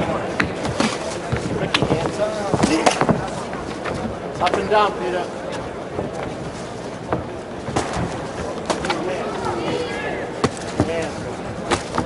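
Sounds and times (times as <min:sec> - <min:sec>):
crowd noise: 0:00.0 - 0:12.0
voices calling out: 0:08.6 - 0:10.8.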